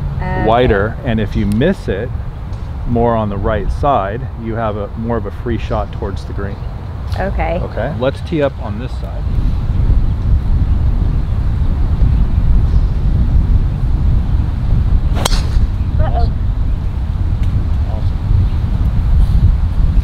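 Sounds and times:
wind rumble on microphone: 0:00.0 - 0:20.0
golf club striking ball: 0:15.1 - 0:15.8.

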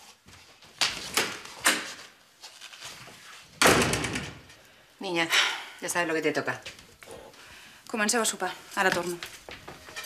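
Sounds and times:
wooden door slamming: 0:03.6 - 0:04.5.

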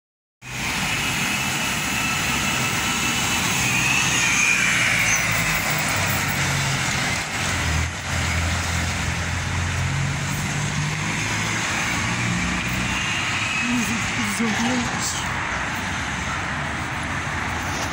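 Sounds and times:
bus and cars passing: 0:00.4 - 0:17.9.

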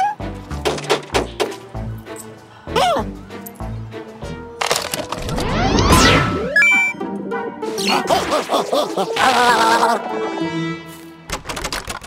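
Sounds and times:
cartoon music with a beat: 0:05.4 - 0:09.0
arcade machine clicks and beeps: 0:06.5 - 0:07.0.

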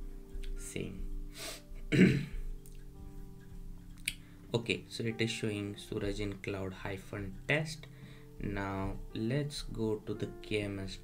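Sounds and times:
quiet background music: 0:00.0 - 0:11.0
man clearing his throat: 0:01.9 - 0:02.5.

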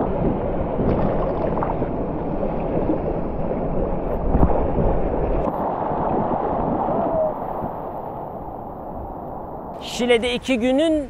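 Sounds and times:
surf washing in shallow water: 0:00.0 - 0:10.8.

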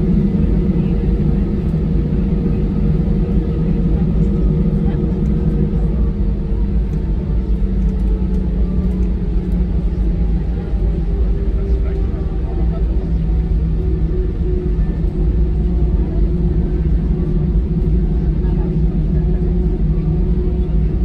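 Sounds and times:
jet engine hum in cabin: 0:00.0 - 0:21.0.

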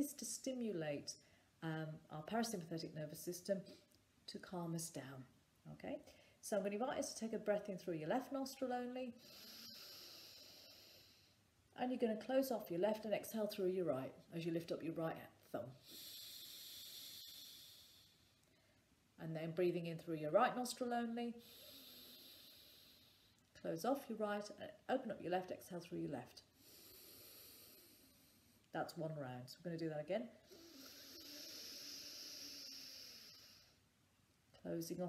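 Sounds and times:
slow exhale through nostril: 0:09.2 - 0:11.4, 0:15.8 - 0:18.6, 0:21.4 - 0:23.4, 0:26.6 - 0:28.5, 0:30.4 - 0:33.8.

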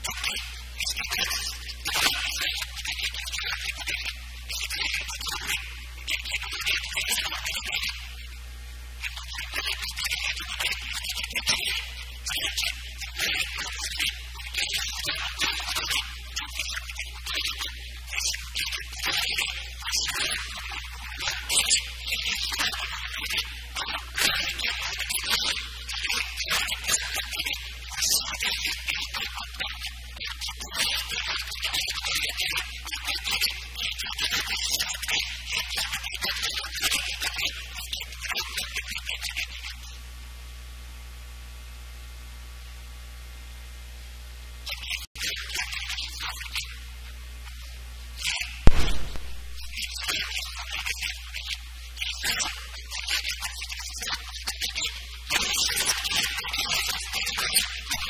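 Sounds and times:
steady low hum: 0:48.7 - 0:50.0.

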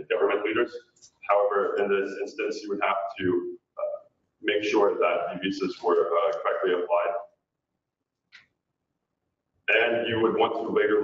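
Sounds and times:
man speaking: 0:00.0 - 0:07.3, 0:09.7 - 0:11.0.

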